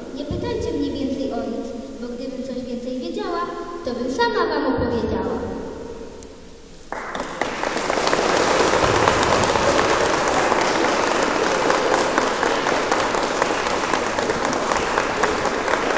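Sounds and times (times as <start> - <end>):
audience applauding: 6.9 - 15.9.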